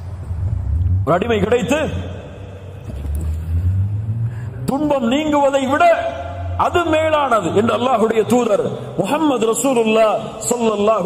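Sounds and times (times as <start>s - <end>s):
steady low rumble: 0.0s - 6.9s.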